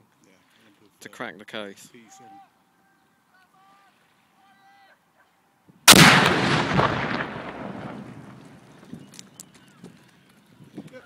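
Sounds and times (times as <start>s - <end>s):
explosion blast with rumble: 5.9s - 8.6s.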